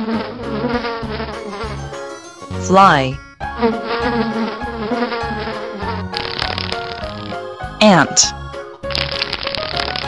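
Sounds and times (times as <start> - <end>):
fly buzzing: 0.0 - 2.8, 3.4 - 10.0.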